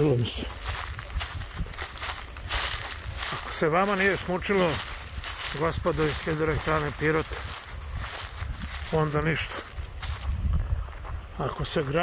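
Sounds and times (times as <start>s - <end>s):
footsteps: 0.0s - 12.0s.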